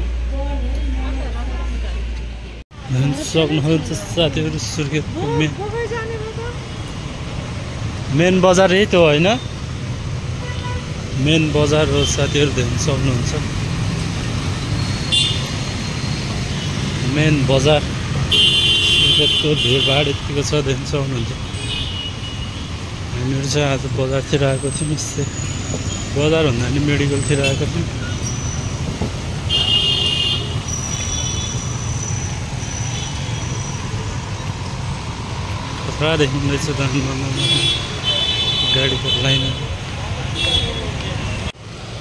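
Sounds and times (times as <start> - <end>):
street traffic noise: 0.0 - 42.0.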